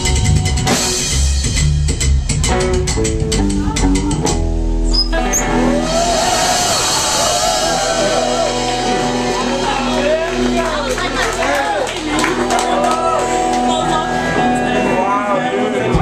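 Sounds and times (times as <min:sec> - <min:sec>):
upright double bass: 0:00.0 - 0:06.4
electric guitar: 0:00.0 - 0:16.0.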